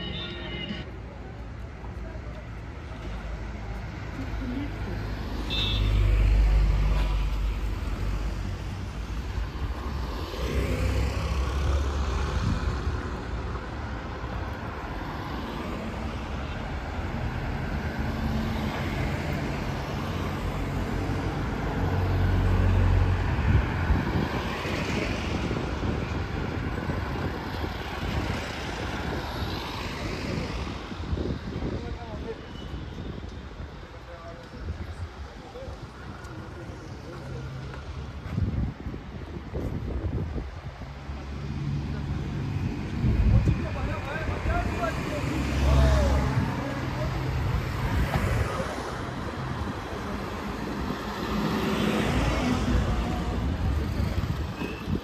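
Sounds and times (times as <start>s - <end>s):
cars and vans passing: 0.0s - 55.0s.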